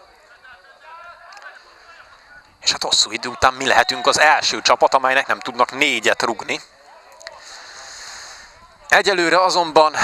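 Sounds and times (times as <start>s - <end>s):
even open-air hiss: 0.0s - 10.0s.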